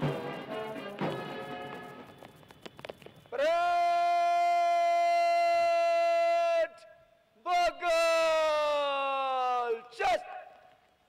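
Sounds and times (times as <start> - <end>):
person shouting a command: 3.4 - 10.6.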